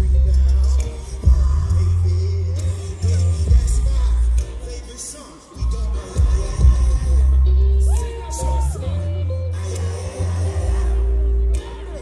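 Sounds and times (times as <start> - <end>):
loud hip hop music with bass: 0.0 - 12.0
melodic vocals: 0.0 - 12.0.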